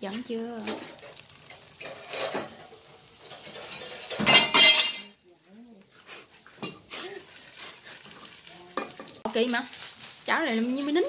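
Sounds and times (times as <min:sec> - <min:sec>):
metal pans clattering and scraping: 0:00.6 - 0:05.2, 0:06.6 - 0:06.9.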